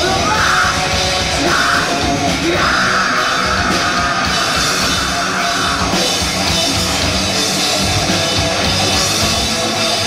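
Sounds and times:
metal band playing: 0.0 - 10.0.

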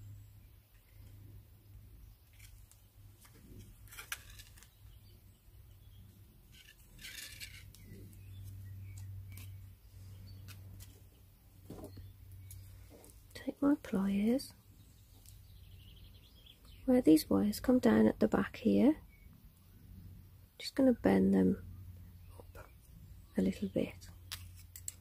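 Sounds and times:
steady low hum: 0.0 - 25.0
copper wire clicks and scrapes: 2.3 - 4.8, 6.5 - 9.6, 24.0 - 25.0.

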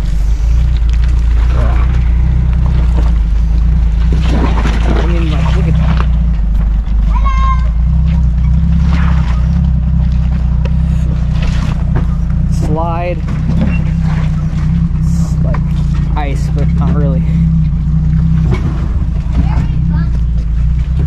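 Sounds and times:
engine rumbling at low revs: 0.0 - 21.0
children calling: 6.9 - 8.1.

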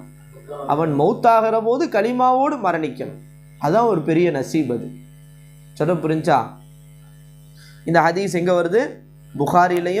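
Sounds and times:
low electrical hum: 0.0 - 10.0
man speaking: 0.3 - 5.0, 7.9 - 10.0.

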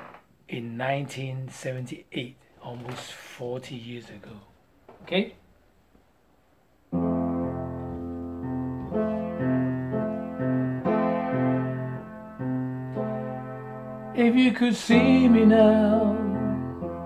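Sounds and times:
piano playing slow chords: 6.9 - 17.0.

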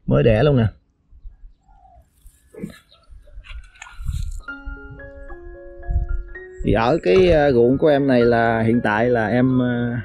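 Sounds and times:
short bird calls: 1.2 - 3.7
wind rumbling on microphone: 2.6 - 8.0.

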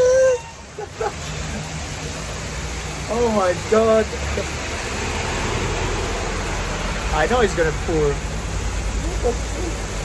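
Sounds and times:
heavy rain on a street: 0.0 - 10.0.

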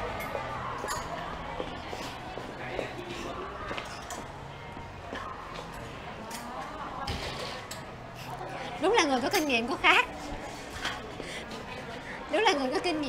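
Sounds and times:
faint voices: 0.0 - 13.0.

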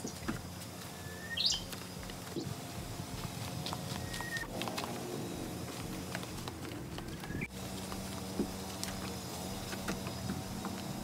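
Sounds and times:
bird chirp: 0.9 - 1.7, 7.0 - 7.5
whistled bird notes: 1.0 - 1.7.

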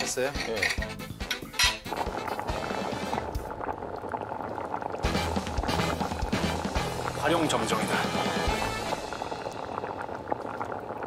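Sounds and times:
background music: 0.0 - 3.7, 5.0 - 10.2
broth bubbling at a boil: 1.5 - 11.0.

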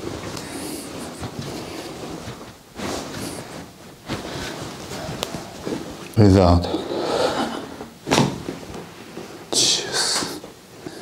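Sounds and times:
hands rubbing on clothing: 0.0 - 6.1.

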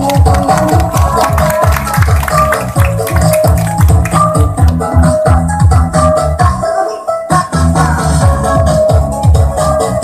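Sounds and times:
electronic music with bass beat: 0.0 - 10.0.

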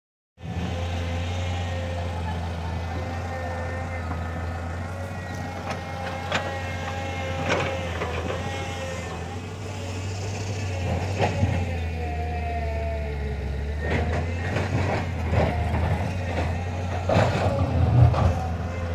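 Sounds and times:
vehicle engine idling: 0.4 - 18.9.

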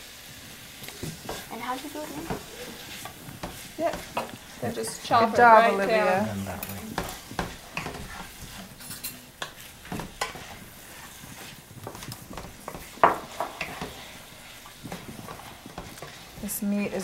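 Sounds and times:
meat sizzling in a frying pan: 0.0 - 17.0.

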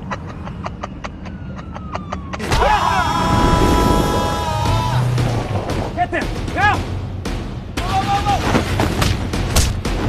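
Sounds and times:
man giggling: 0.0 - 2.4.

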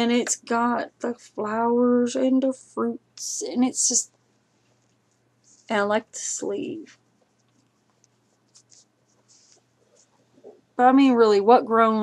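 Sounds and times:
faint doll clothing rustles: 4.4 - 10.8.

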